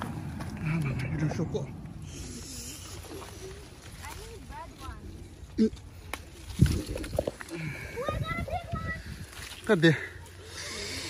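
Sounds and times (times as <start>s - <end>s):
leaves rustling: 2.0s - 11.0s.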